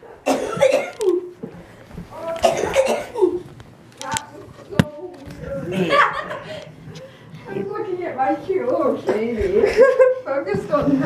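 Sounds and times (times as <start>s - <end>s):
person coughing: 0.3s - 1.2s, 2.4s - 3.4s.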